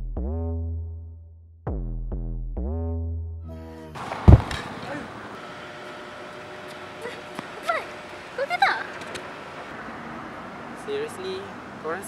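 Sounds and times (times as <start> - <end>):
open-air background noise: 4.0 - 12.0
heavy thump: 4.1 - 4.7.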